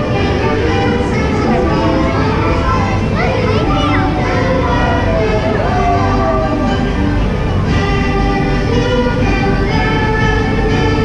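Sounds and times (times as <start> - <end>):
background music: 0.0 - 11.0
children's high voices: 0.0 - 11.0.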